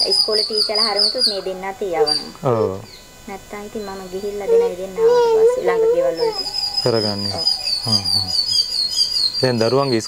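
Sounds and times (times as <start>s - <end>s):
man speaking: 2.4s - 2.9s, 6.8s - 8.6s.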